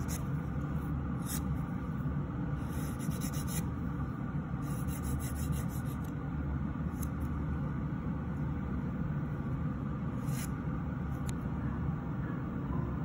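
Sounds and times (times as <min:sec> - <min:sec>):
dust collector fan humming: 0:00.0 - 0:13.0
file rasping on fingernail: 0:02.7 - 0:03.6, 0:04.6 - 0:06.1.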